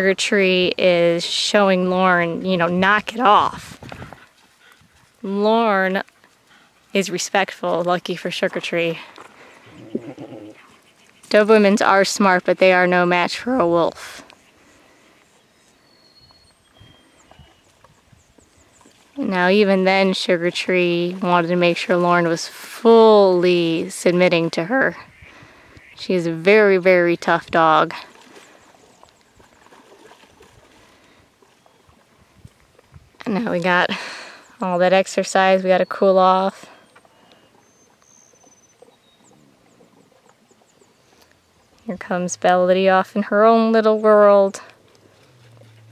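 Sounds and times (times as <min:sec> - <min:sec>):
high bird chirps: 0:15.3 - 0:17.7
dogs lapping water: 0:27.6 - 0:33.2, 0:42.9 - 0:45.9.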